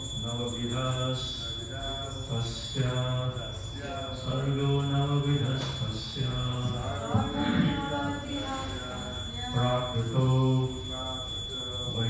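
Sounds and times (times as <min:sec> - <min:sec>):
man chanting into a microphone: 0:00.2 - 0:08.0.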